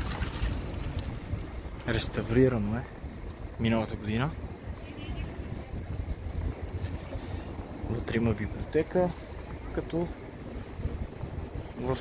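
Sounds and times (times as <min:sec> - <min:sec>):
town street noise: 0:00.0 - 0:12.0
wind buffeting microphone: 0:00.0 - 0:12.0.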